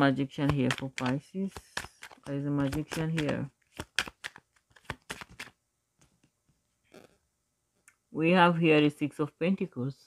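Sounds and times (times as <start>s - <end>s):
cards being shuffled: 0.3s - 6.2s.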